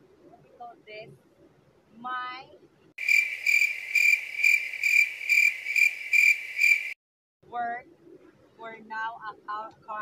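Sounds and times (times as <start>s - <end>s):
people talking: 0.3s - 1.2s, 2.0s - 2.7s, 7.5s - 8.0s, 8.6s - 10.0s
cricket chirping: 3.0s - 7.0s.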